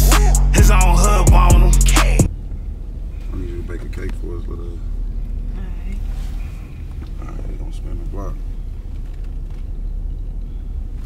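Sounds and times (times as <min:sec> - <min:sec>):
car cabin engine and road rumble: 0:00.0 - 0:11.0
people talking: 0:03.3 - 0:04.9.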